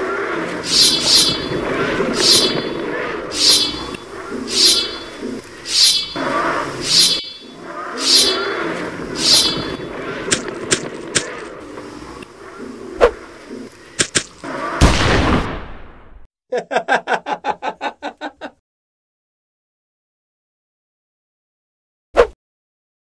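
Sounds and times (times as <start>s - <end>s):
sharp hits: 0.6s - 8.6s.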